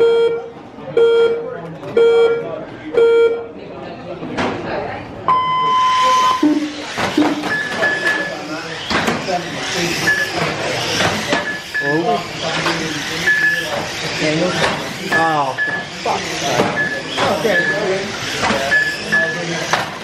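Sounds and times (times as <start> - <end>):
short timing beeps: 0.0 - 3.4, 5.3 - 6.7, 7.5 - 8.4, 13.2 - 13.7, 15.5 - 15.9, 16.7 - 18.0, 18.7 - 19.5
rc car motors whirring: 5.9 - 20.0
cars knocking track edges: 6.9 - 20.0.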